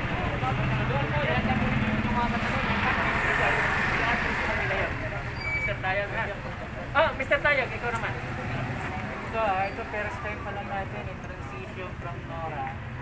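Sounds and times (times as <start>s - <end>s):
people chatting: 0.0s - 13.0s.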